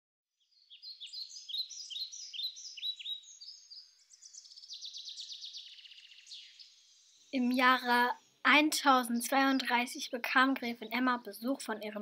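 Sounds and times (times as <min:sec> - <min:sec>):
short falling bird chirps: 0:00.5 - 0:07.4
fast bird trill: 0:00.7 - 0:06.7.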